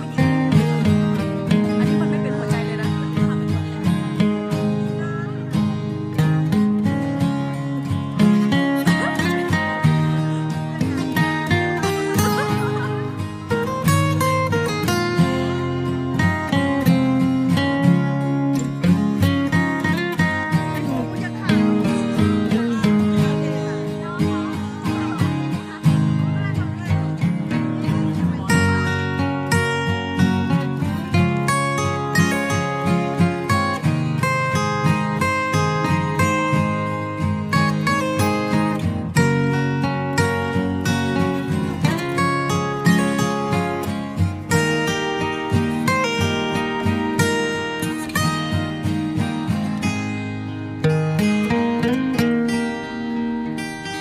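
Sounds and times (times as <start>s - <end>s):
acoustic guitar music: 0.0s - 54.0s.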